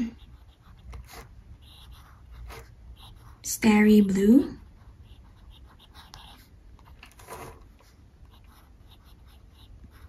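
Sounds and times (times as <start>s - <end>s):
fountain pen scratching on paper: 0.0s - 3.8s, 4.6s - 10.0s.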